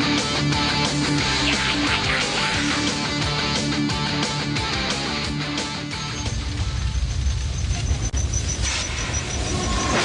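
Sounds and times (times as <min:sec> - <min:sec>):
subway train rumbling in tunnel: 0:05.8 - 0:10.0.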